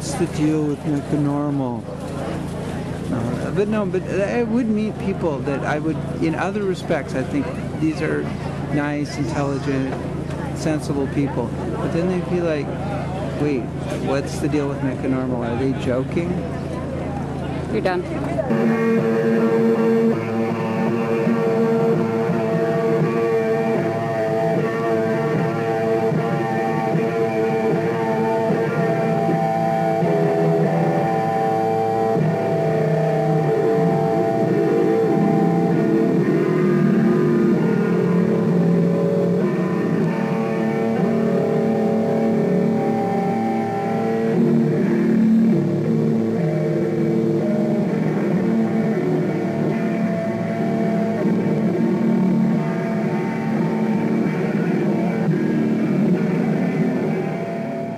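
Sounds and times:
electric guitar chords: 0.0s - 57.9s.

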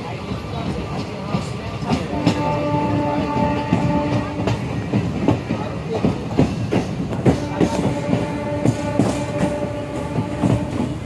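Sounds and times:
train running rumble: 0.0s - 11.0s
train wheels clacking over rail joints: 0.4s - 11.0s.

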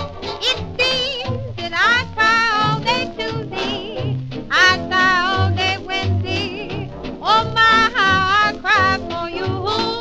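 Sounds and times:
big band swing recording: 0.0s - 10.0s.

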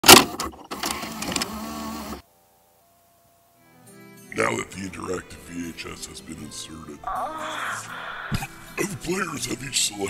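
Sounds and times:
motor whir: 0.8s - 2.2s.

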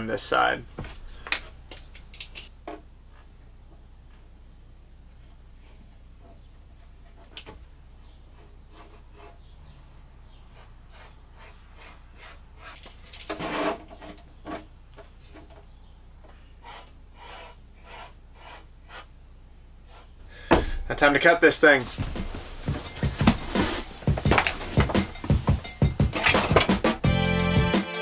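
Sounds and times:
marker scratching on plastic: 8.3s - 9.5s, 10.5s - 14.6s, 16.6s - 19.1s, 19.9s - 20.2s.

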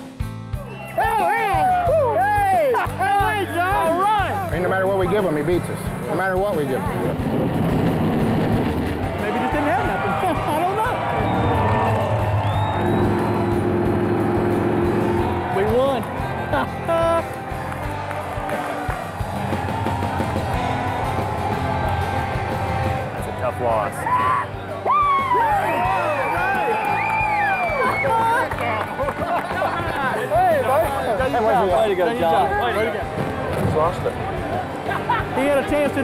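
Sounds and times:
background music: 0.0s - 36.0s
crowd cheering: 0.5s - 36.0s
people shouting and whooping: 0.6s - 4.5s, 9.2s - 31.0s.

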